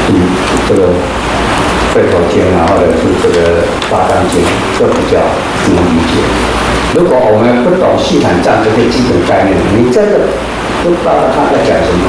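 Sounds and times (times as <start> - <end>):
man lecturing through microphone: 0.0 - 12.0.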